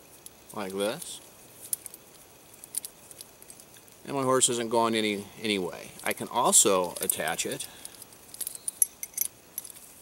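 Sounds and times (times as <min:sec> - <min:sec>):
metal hardware clinking: 0:05.9 - 0:09.9.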